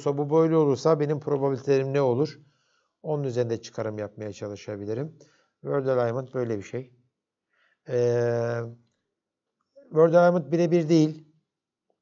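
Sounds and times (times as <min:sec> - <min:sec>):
man speaking: 0:00.0 - 0:02.4, 0:03.1 - 0:06.9, 0:07.9 - 0:08.8, 0:09.9 - 0:11.2.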